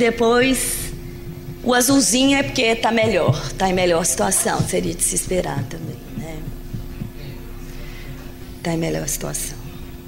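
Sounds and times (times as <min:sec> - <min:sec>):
microphone system hum: 0:00.0 - 0:10.0
person speaking: 0:01.7 - 0:07.5.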